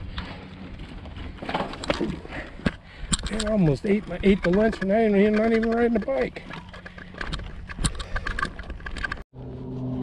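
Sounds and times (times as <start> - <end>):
gravel clicking underfoot: 0.0 - 9.2.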